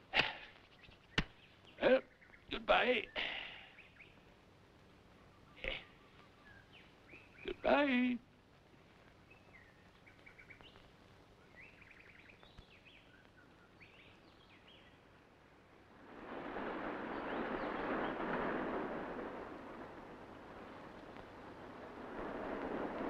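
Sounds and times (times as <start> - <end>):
faint bird chirps: 0.4 - 4.3, 5.1 - 7.8, 9.0 - 15.4, 17.0 - 18.4
breaking surf: 16.0 - 23.0.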